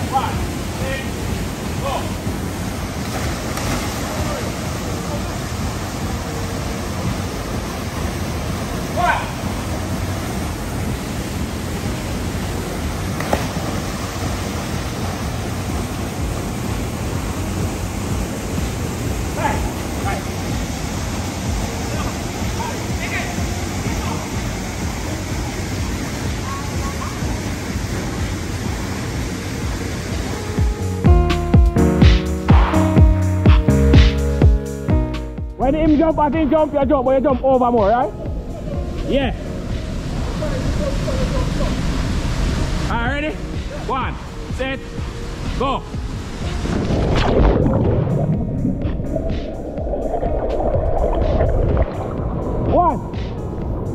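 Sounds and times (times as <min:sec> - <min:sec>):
river water rushing over rocks: 0:00.0 - 0:30.5, 0:38.8 - 0:53.9.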